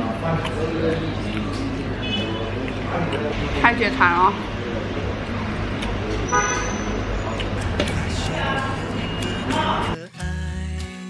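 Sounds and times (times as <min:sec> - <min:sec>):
street traffic noise: 0:00.0 - 0:10.0
vehicle horn toot: 0:06.3 - 0:07.0.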